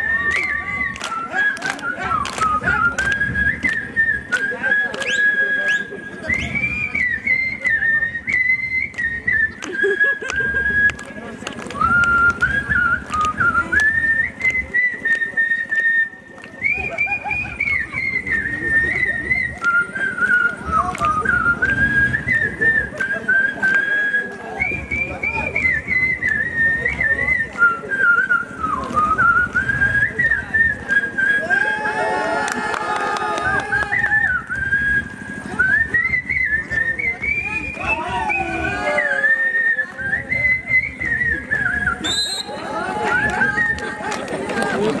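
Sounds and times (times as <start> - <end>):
man whistling a melody: 0.0 - 32.0, 33.6 - 44.1.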